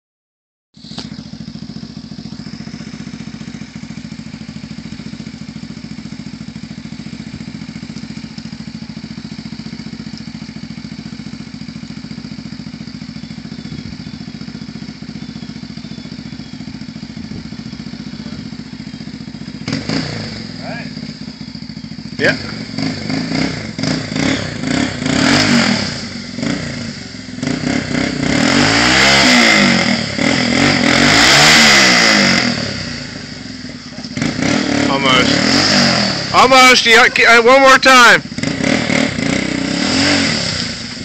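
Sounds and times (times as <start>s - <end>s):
atv engine idling: 0.8s - 41.0s.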